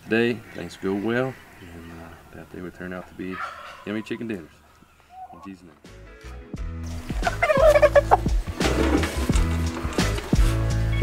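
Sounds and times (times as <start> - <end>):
chicken calling: 0.4 - 5.7, 7.2 - 8.4
background music: 5.1 - 11.0.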